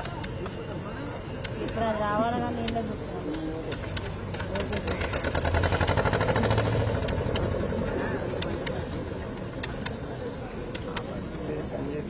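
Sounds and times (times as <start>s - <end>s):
voices of people: 0.0s - 12.0s
boat engine running: 4.1s - 10.5s.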